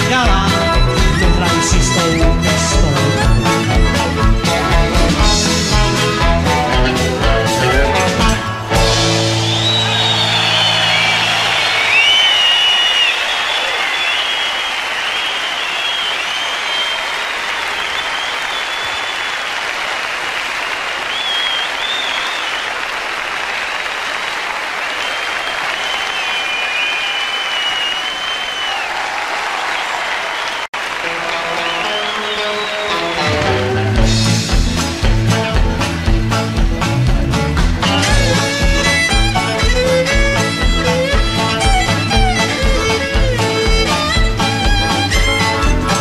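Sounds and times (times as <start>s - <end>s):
live band music: 0.0s - 14.2s, 30.8s - 46.0s
audience applauding: 0.0s - 46.0s
high whistles: 9.1s - 19.6s, 20.6s - 22.8s, 24.9s - 29.0s, 31.6s - 33.2s.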